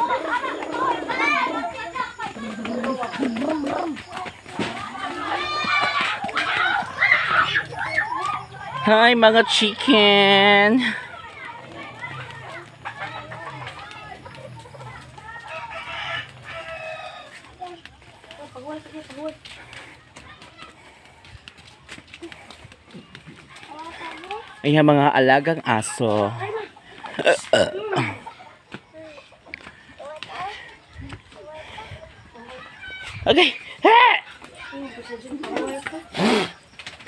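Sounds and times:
hens clucking: 0.0s - 37.0s.

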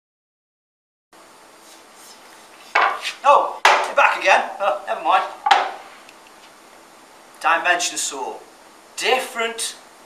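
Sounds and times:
wooden board knocking on table: 2.8s - 3.9s, 5.4s - 5.9s.

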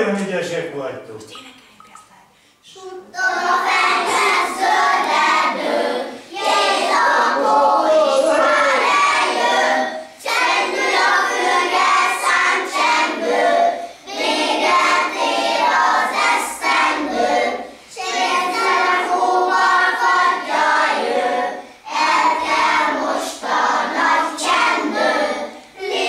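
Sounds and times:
children singing in chorus: 3.1s - 26.0s.

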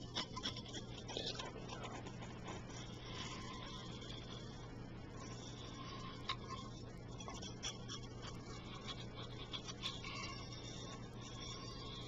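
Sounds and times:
recorder hiss and hum: 0.0s - 12.0s.

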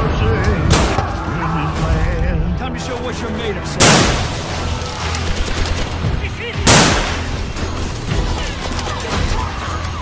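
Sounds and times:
gunshots: 3.8s - 4.5s, 5.1s - 7.4s.

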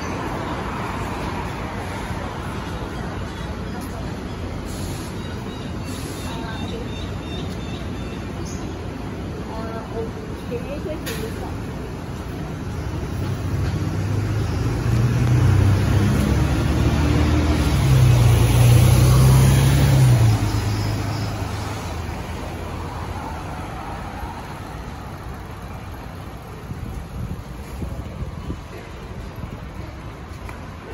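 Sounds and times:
light road traffic: 0.0s - 30.9s
diesel bus engine accelerating: 13.1s - 29.6s.

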